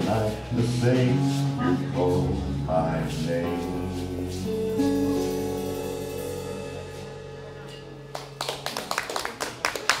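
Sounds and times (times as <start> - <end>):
audience clapping: 8.1 - 10.0.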